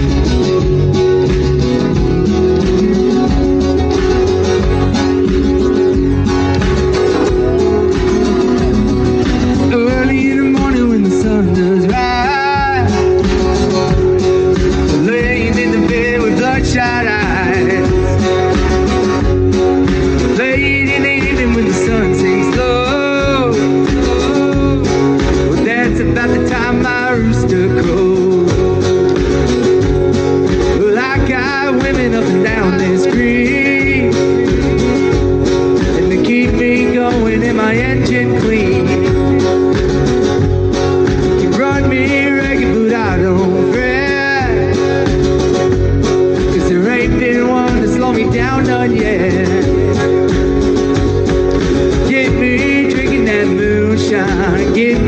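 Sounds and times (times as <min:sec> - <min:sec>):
live country band playing: 0:00.0 - 0:55.0
person singing: 0:00.0 - 0:55.0
strummed acoustic guitar: 0:00.0 - 0:55.0.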